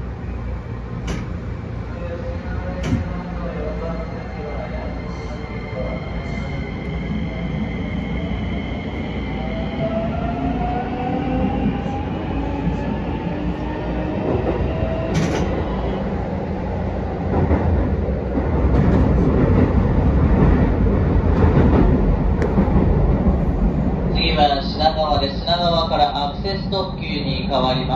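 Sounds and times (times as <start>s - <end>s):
train wheels rumbling on rails: 0.0s - 27.9s.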